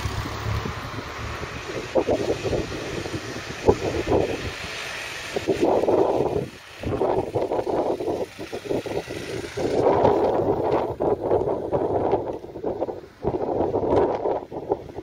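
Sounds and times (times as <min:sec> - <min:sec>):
van driving past: 0:00.0 - 0:11.8
wind buffeting microphone: 0:00.0 - 0:15.0.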